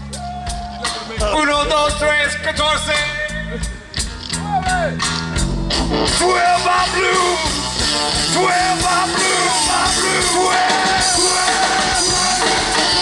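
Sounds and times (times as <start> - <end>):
bass guitar: 0.0 - 13.0
drums: 0.0 - 13.0
electric guitar: 3.5 - 13.0.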